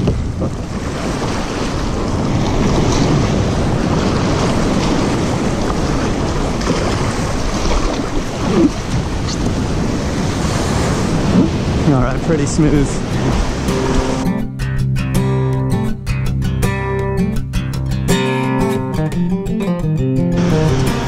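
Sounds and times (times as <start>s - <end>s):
wind noise on microphone: 0.0s - 14.3s
surf breaking: 0.0s - 14.4s, 20.3s - 21.0s.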